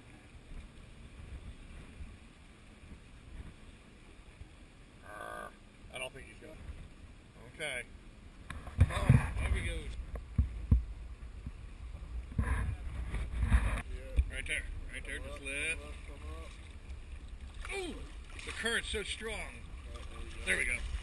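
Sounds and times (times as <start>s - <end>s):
wind buffeting microphone: 8.5s - 18.4s.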